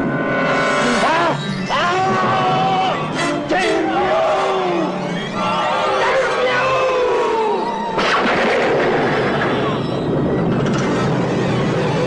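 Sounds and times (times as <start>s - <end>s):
rumbling roar of film score: 3.9s - 12.0s.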